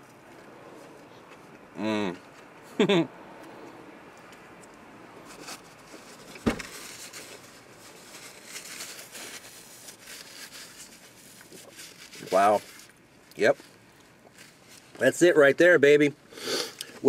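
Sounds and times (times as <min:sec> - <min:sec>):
paper wrapper rustling: 0:05.3 - 0:14.9.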